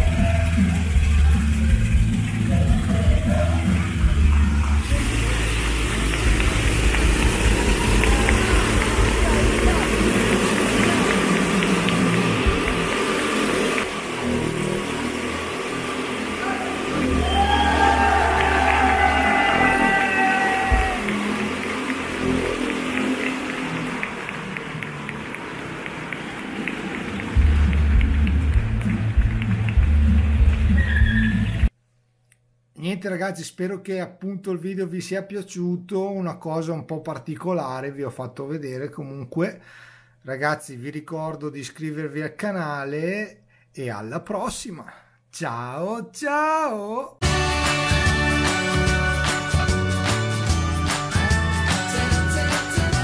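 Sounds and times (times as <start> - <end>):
music over loudspeaker: 0.0 - 13.8, 47.2 - 53.0
motorcycle engine idling: 4.9 - 13.4.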